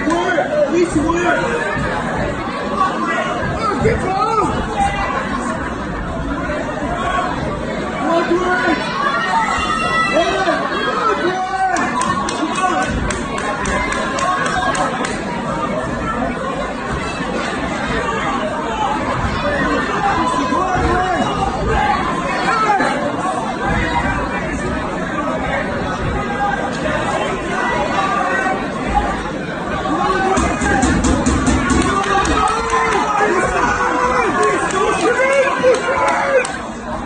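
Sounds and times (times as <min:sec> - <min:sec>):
crowd shouting and chattering: 0:00.0 - 0:37.0.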